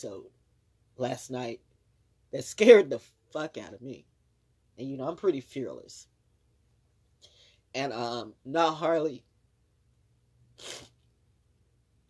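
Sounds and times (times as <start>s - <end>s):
short puff of breath: 10.6s - 11.0s.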